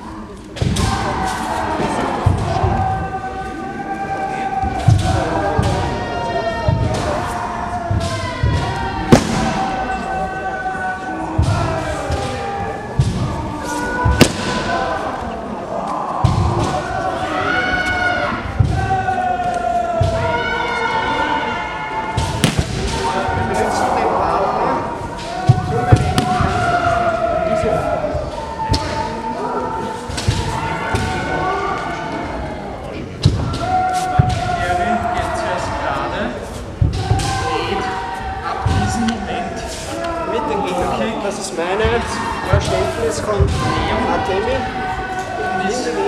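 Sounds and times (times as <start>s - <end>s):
murmur of voices: 0.0s - 46.0s.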